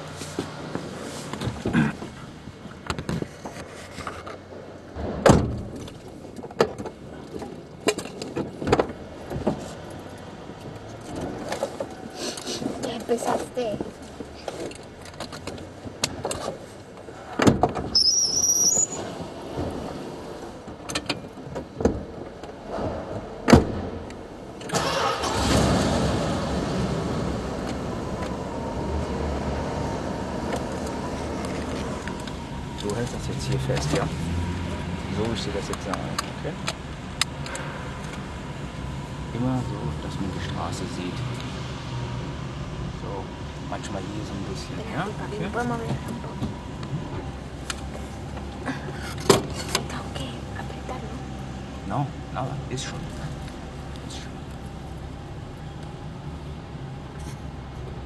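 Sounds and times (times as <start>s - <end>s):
rising high squeak: 17.9s - 19.3s
car engine starting and idling: 19.2s - 58.0s.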